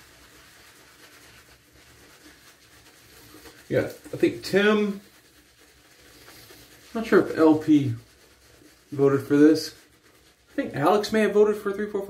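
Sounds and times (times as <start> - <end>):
shaving brush rubbing lather: 0.0 - 12.0.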